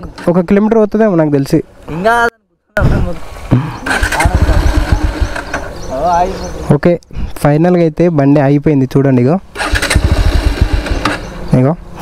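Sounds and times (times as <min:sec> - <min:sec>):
engine cranking on starter: 0:03.9 - 0:05.7, 0:09.5 - 0:11.3
man talking: 0:05.8 - 0:09.4, 0:11.5 - 0:11.8.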